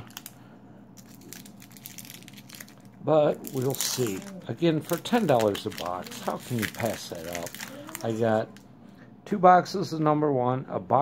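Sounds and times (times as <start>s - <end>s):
plastic wrapper crinkling: 0.0s - 0.4s, 1.0s - 8.7s.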